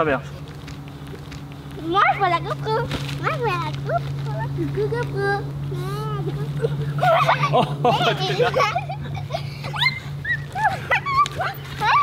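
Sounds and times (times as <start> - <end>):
steady low hum: 0.0 - 12.0
girls squealing: 9.0 - 12.0.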